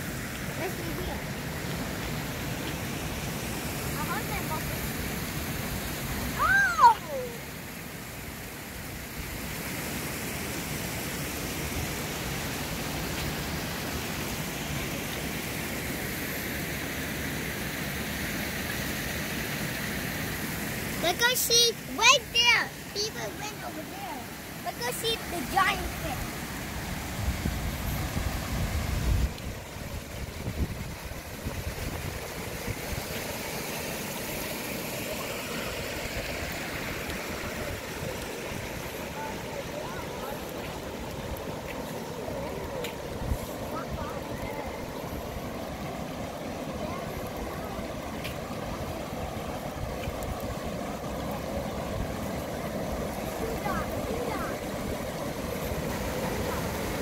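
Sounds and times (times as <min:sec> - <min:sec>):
water rushing over weirs: 0:00.0 - 0:57.0.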